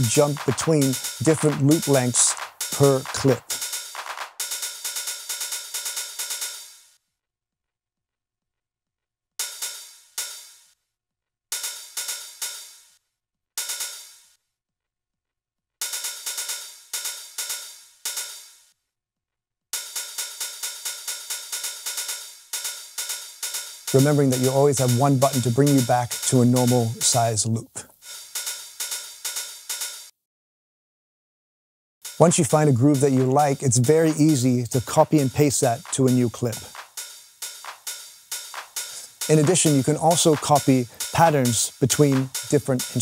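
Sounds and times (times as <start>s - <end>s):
electronic drum loop hi-hat ticks: 0.0s - 6.9s, 9.4s - 10.7s, 11.5s - 12.9s, 13.6s - 14.3s, 15.8s - 18.7s, 19.8s - 30.1s, 32.0s - 43.0s.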